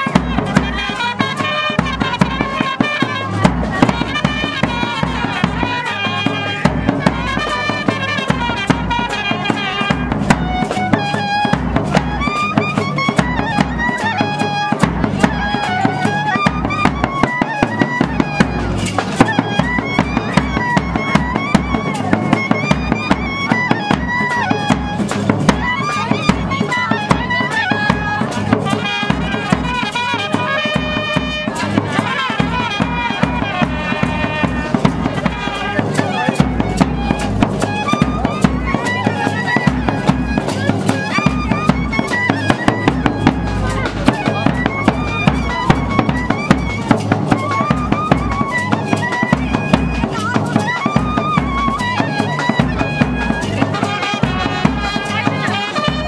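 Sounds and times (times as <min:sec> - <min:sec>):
fast steady beat: 0:00.0 - 0:56.0
saxophone and clarinet melody: 0:00.0 - 0:56.0.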